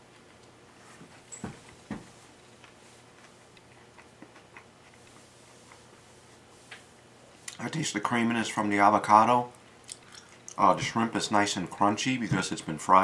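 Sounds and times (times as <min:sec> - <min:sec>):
chewing crunchy food: 0:00.0 - 0:07.6, 0:09.5 - 0:10.7.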